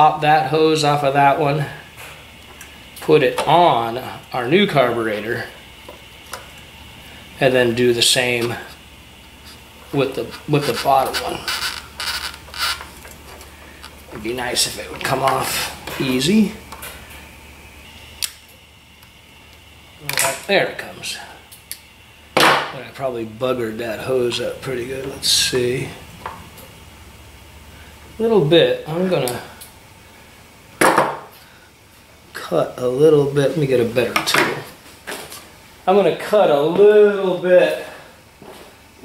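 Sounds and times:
rubber hose rubbing and scraping: 9.4 - 13.4.

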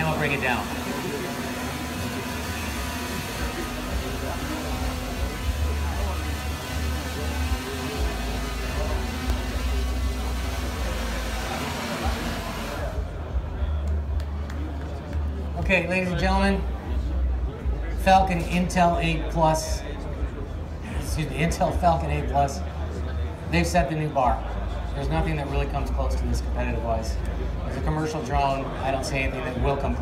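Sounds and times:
drone rotors humming: 0.0 - 13.8
chatter: 0.0 - 30.0.

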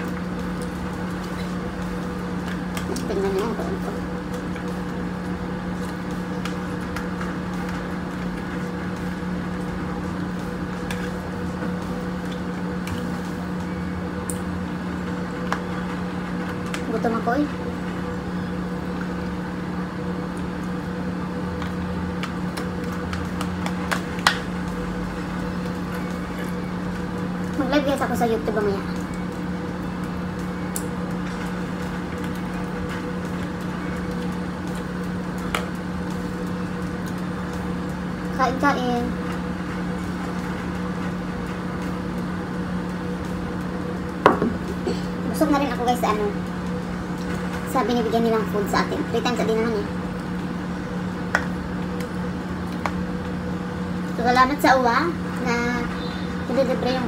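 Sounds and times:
low electrical hum: 0.0 - 57.0.

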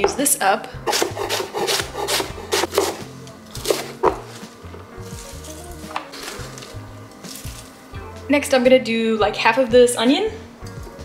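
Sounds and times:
background music: 0.0 - 11.0
knife chopping cabbage on board: 0.9 - 4.4.

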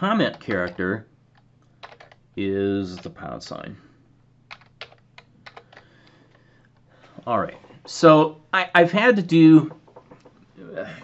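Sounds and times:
faint keyboard keystrokes: 0.2 - 2.2, 4.5 - 6.8, 9.6 - 10.4.

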